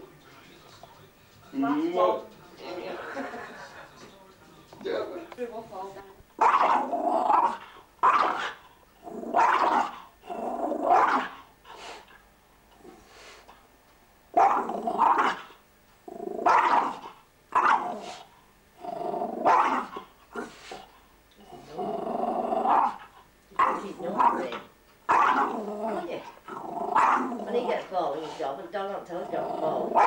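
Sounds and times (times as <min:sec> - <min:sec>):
small dog growling and barking: 0:06.4 - 0:11.5, 0:14.3 - 0:27.9, 0:29.2 - 0:30.0.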